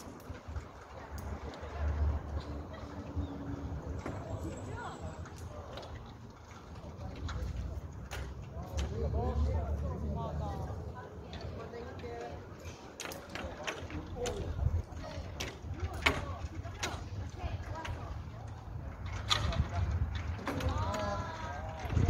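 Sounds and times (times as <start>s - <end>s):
faint chatter of voices: 0.0s - 22.0s.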